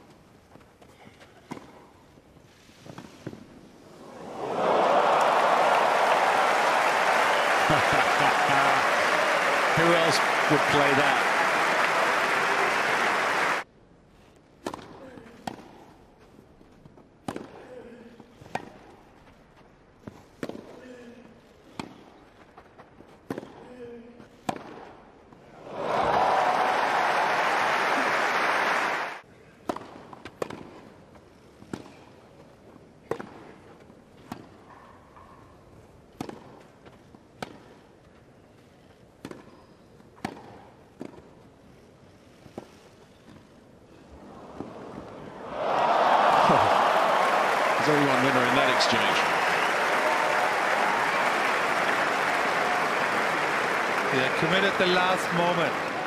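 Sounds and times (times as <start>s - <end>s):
crowd applause: 4.1s - 13.6s, 25.6s - 29.2s, 45.3s - 56.0s
racket hitting tennis ball: 24.4s - 24.9s, 29.6s - 30.9s, 36.2s - 36.6s, 39.2s - 39.6s, 40.2s - 41.3s.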